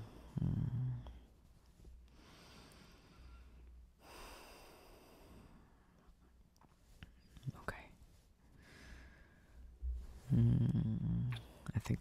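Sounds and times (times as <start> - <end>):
person whispering: 7.3 - 8.0, 10.3 - 12.0.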